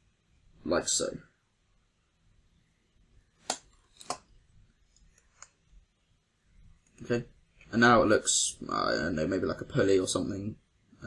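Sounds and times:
mouse and keyboard clicks: 3.4s - 4.3s.

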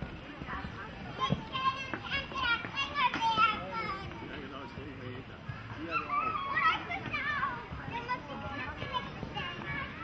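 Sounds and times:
children calling out: 5.8s - 10.0s.

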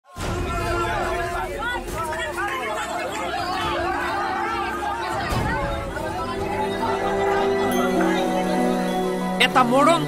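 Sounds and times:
women talking and wailing: 0.8s - 10.0s.

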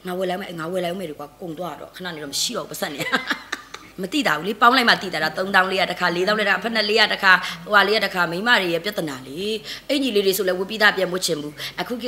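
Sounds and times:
woman talking: 0.0s - 12.0s.

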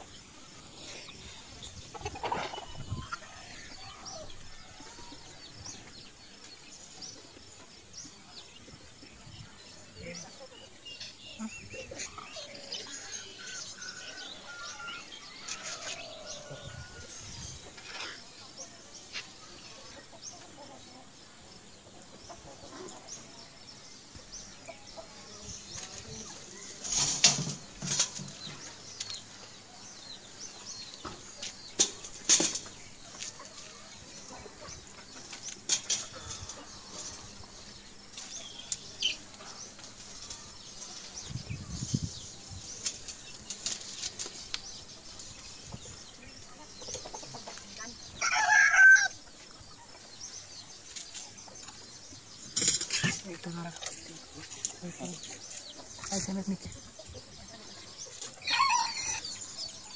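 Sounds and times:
chickens clucking: 0.0s - 59.9s
rooster crowing: 48.2s - 49.2s.

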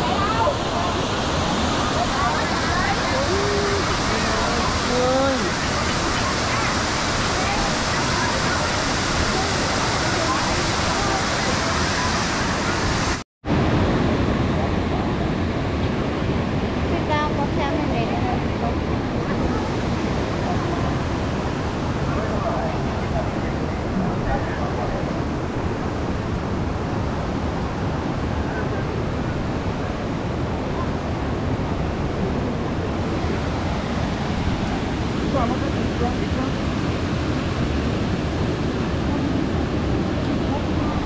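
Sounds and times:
waterfall roaring: 0.0s - 41.0s.

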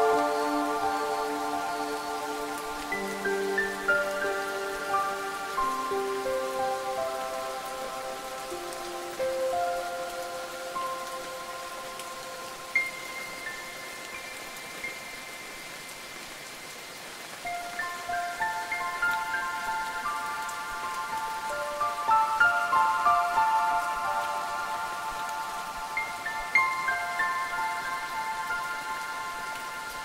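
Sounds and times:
steady rain: 0.0s - 30.0s.

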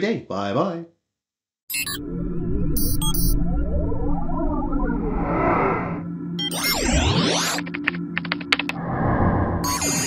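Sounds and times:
sweeping pitch glides: 2.0s - 7.8s
sharp clicks: 7.6s - 8.8s.

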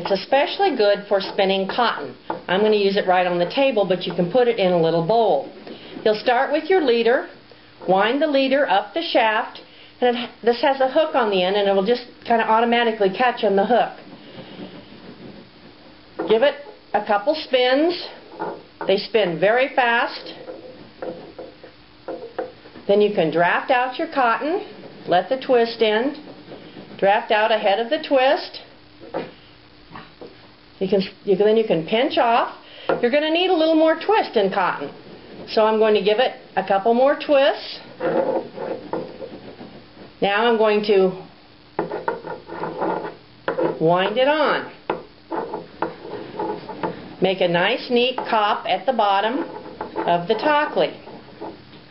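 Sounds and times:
spindle tapping on wooden table: 41.8s - 43.8s.

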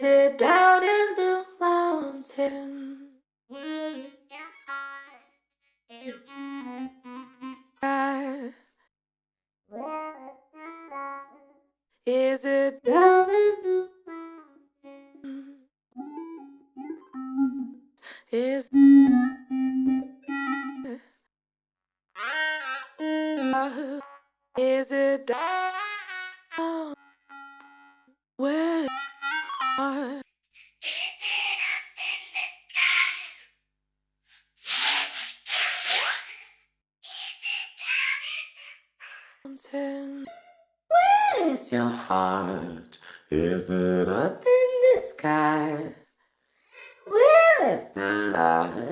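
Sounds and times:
vocoded female singing: 0.0s - 3.1s, 7.8s - 8.6s, 12.1s - 13.8s, 17.4s - 20.1s, 23.6s - 24.0s, 24.6s - 25.3s, 28.4s - 28.9s, 29.8s - 30.2s, 39.5s - 40.3s, 40.9s - 46.0s, 46.8s - 48.9s.

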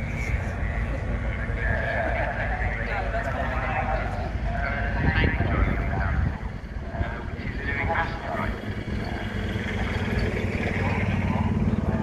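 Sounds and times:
people talking: 0.0s - 12.0s
steady low rumble: 0.0s - 12.0s.

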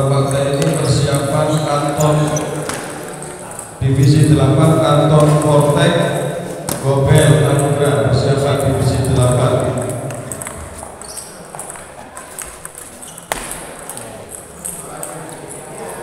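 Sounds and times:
man's amplified voice: 0.0s - 10.9s
table tennis balls clicking: 7.4s - 15.7s.

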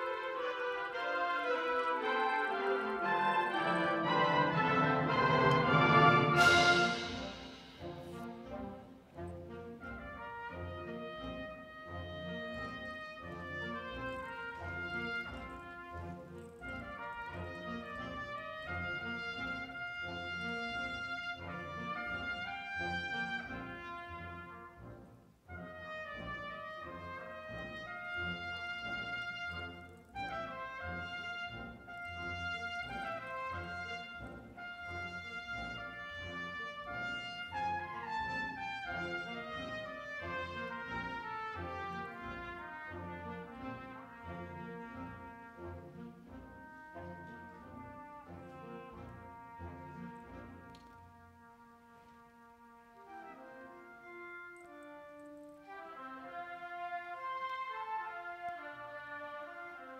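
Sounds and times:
symphonic band brass passage: 0.0s - 59.9s.

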